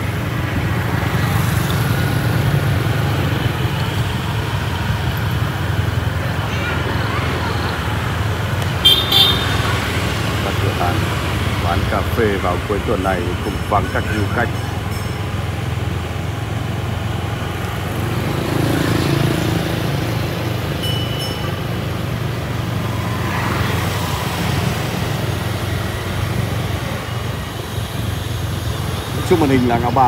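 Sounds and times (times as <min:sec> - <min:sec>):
motorbike engines passing: 0:00.0 - 0:30.0.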